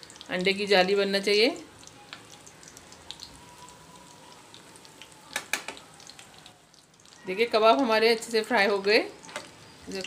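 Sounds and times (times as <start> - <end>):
food sizzling in hot oil: 0.0 - 10.0.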